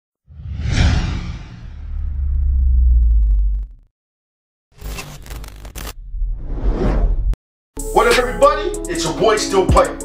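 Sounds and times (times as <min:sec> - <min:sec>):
whoosh: 0:00.3 - 0:03.7
deep low rumble: 0:00.3 - 0:03.9.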